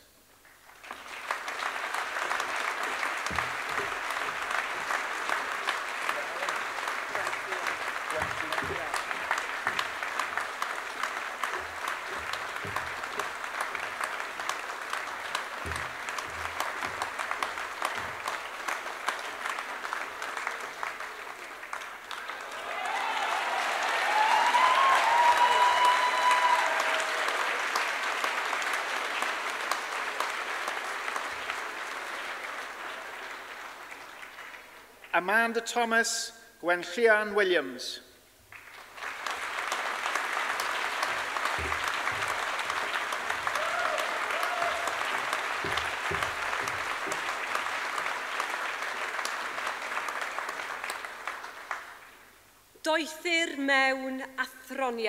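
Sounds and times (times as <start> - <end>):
audience applauding: 0.0 - 35.2, 38.5 - 52.6
high whoop: 22.5 - 27.3, 43.5 - 45.1.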